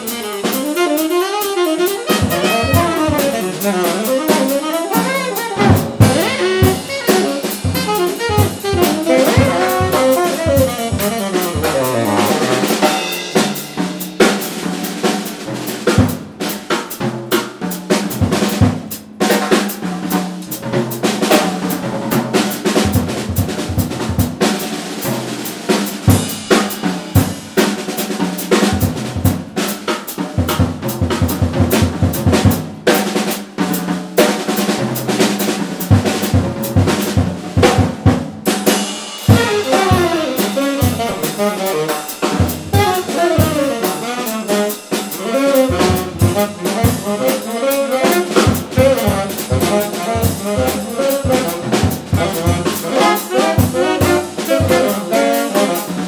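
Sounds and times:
tenor saxophones playing: 0.0 - 13.6, 39.2 - 56.0
jazz drum kit solo: 0.0 - 56.0.

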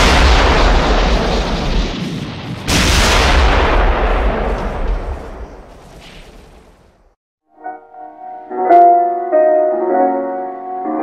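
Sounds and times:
artillery blasts with deep rumble: 0.0 - 7.2.

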